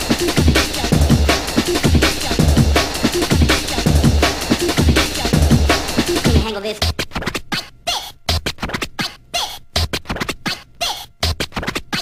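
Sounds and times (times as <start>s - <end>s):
breakbeat drum groove: 0.0s - 12.0s.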